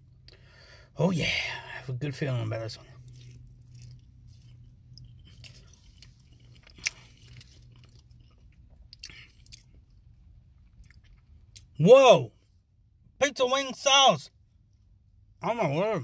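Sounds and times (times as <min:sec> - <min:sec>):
low steady hum: 0:00.0 - 0:16.0
man chewing food: 0:02.8 - 0:11.7.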